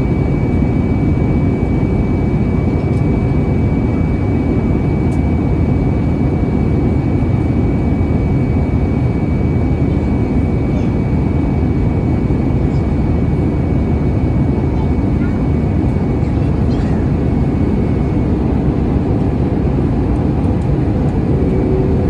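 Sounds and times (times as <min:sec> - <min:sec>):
airflow and jet engine rush: 0:00.0 - 0:22.0
high-pitched whine: 0:00.0 - 0:22.0.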